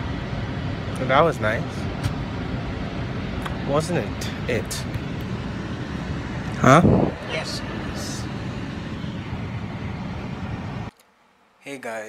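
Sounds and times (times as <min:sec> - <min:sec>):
road and engine noise in car: 0:00.0 - 0:10.9.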